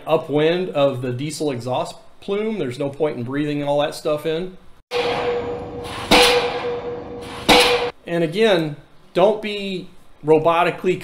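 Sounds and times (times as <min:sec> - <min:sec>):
steady hum: 0:04.9 - 0:07.9
pile hammer blows: 0:04.9 - 0:08.0.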